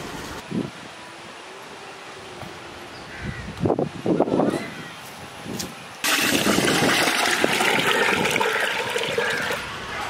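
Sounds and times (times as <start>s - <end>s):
water pouring into metal pot: 6.0s - 9.6s.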